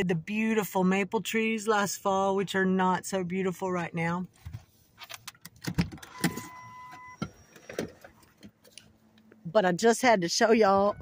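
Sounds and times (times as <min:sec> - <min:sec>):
car warning chime: 0:06.0 - 0:07.8, 0:10.4 - 0:11.0.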